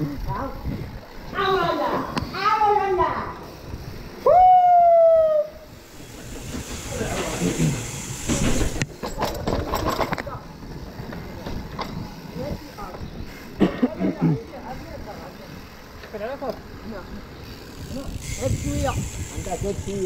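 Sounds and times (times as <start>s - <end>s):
mountain bikes rattling and knocking: 0.0s - 4.3s, 5.6s - 20.0s
person shouting: 4.2s - 5.6s.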